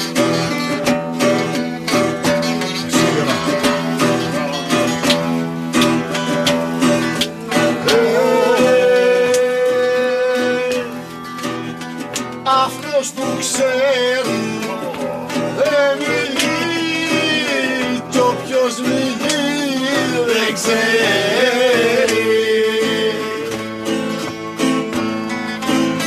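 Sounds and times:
acoustic guitar: 0.0s - 26.0s
hand drum: 0.0s - 26.0s
lute: 0.0s - 26.0s
man singing: 7.3s - 11.3s, 12.4s - 24.3s.

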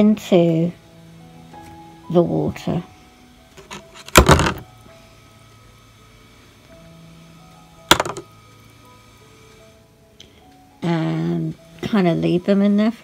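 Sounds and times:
faint background music: 0.0s - 13.0s
sharp knock: 7.9s - 8.2s.

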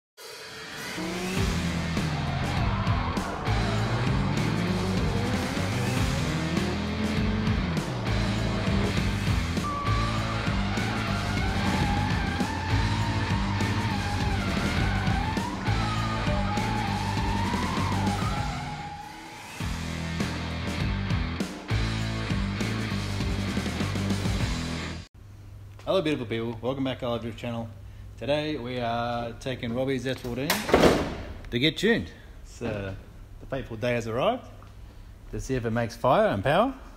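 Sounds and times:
driving music track: 0.2s - 25.1s
car engine revving: 0.3s - 20.8s
tyres squealing: 9.4s - 19.0s.

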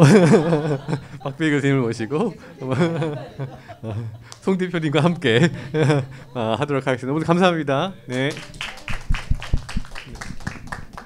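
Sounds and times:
people applauding: 8.1s - 11.0s.

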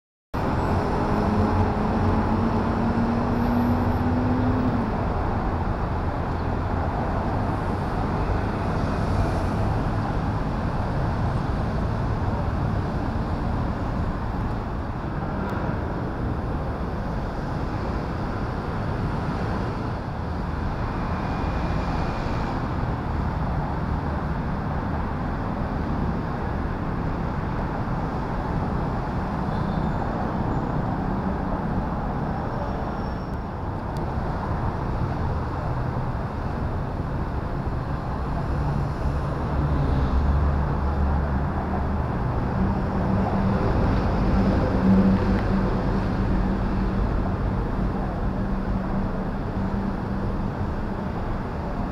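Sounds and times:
road traffic noise: 0.4s - 51.9s
vehicle engine speeding up: 0.5s - 5.1s.

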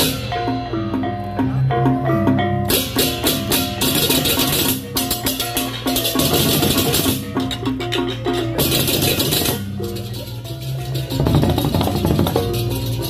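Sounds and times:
hand cymbals clashing: 2.6s - 13.0s.

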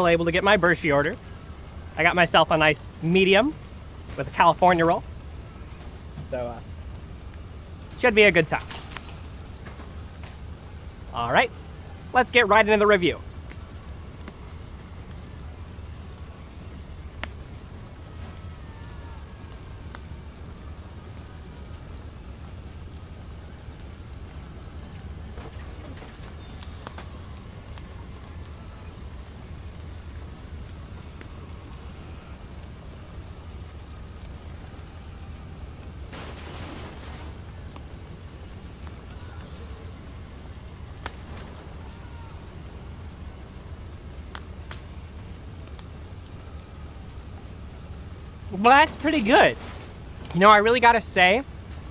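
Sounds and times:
faint clicks: 13.2s - 36.2s, 36.8s - 48.4s.

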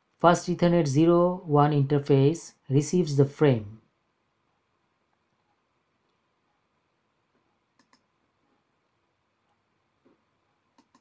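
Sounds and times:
faint mouse clicks: 7.3s - 8.6s, 9.4s - 11.0s.

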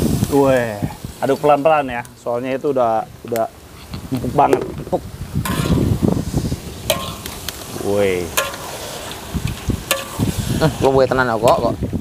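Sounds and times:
food sizzling: 0.0s - 12.0s
metal spatula scraping a wok: 5.4s - 11.7s
spatula clinking on pan: 6.9s - 7.2s.

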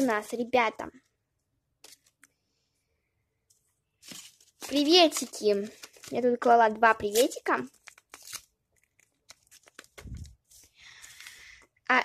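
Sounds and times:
paper rustling and crinkling: 4.0s - 11.4s.

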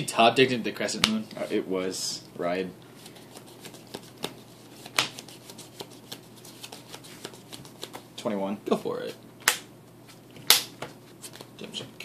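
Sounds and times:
cards clicking and tapping on table: 5.8s - 8.0s.

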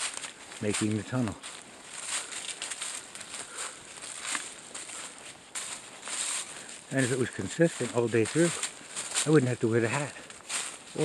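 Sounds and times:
footsteps crunching dry leaves: 0.0s - 11.0s.

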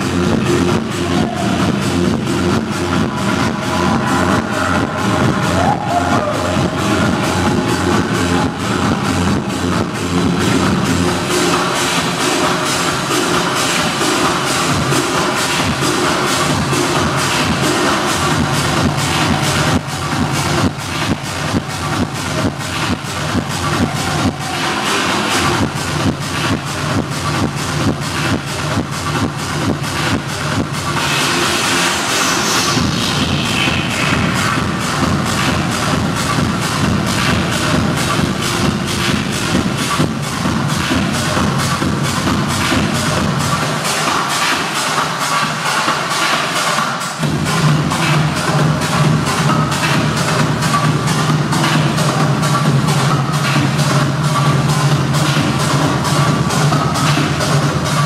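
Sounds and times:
rushing noise sweep: 0.0s - 26.0s
techno music over club speakers: 0.0s - 58.0s
kick drum: 32.8s - 43.5s.

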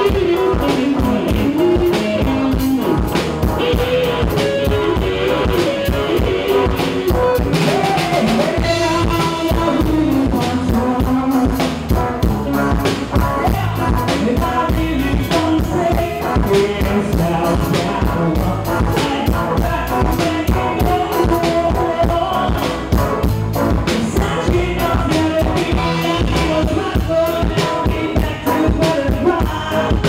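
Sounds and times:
drum kit beat: 0.0s - 30.0s
guitar and bass: 0.0s - 30.0s
lead melody: 0.0s - 30.0s.

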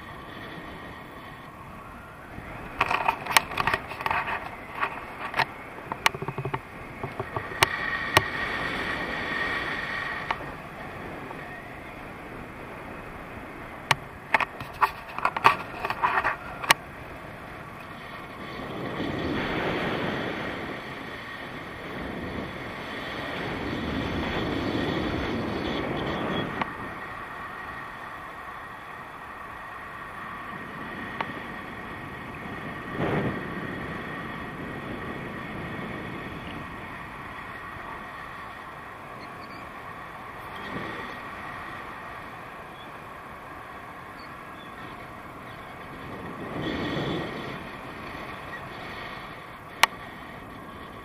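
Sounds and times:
wind on microphone: 0.0s - 51.0s.

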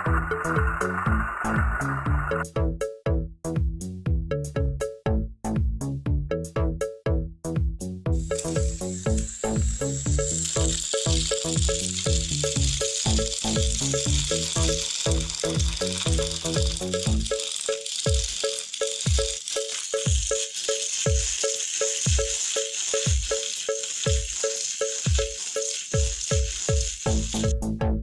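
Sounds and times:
toy train motors whirring: 0.0s - 2.4s, 8.2s - 27.6s
electronic music with kick drum: 0.0s - 28.0s.

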